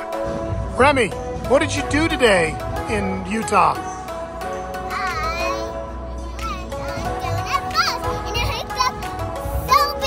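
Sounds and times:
music playing: 0:00.0 - 0:10.0
girl's excited voice: 0:06.4 - 0:10.0.

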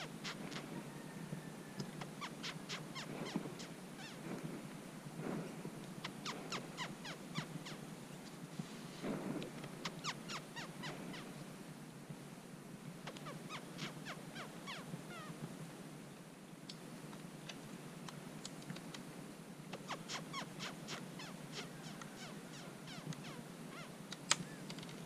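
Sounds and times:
small animal chirping: 0:00.0 - 0:00.8, 0:02.0 - 0:04.4, 0:06.0 - 0:07.8, 0:09.8 - 0:11.3, 0:13.0 - 0:15.3, 0:19.8 - 0:24.7.

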